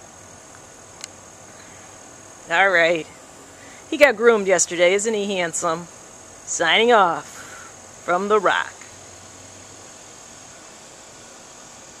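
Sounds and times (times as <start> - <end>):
crickets trilling: 0.0 - 12.0
outdoor background hiss: 0.0 - 12.0.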